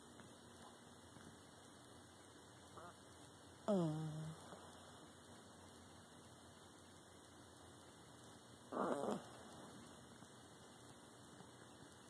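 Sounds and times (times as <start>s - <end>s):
faint steady hum: 0.0s - 12.0s
low falling vocal hum: 3.6s - 5.1s, 8.7s - 9.8s
dog groaning: 8.7s - 9.4s.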